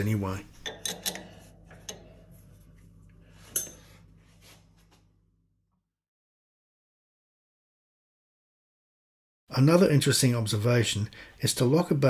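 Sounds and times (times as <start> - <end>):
low steady hum: 0.0 - 5.6.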